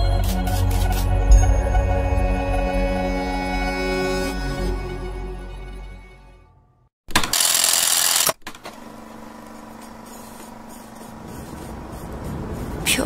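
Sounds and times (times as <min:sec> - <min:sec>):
ambient music: 0:00.0 - 0:06.9
mechanical running noise with hum: 0:07.1 - 0:13.0.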